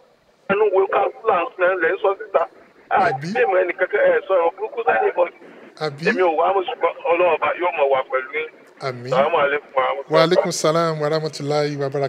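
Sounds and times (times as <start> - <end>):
man talking over phone line: 0.5 - 12.0.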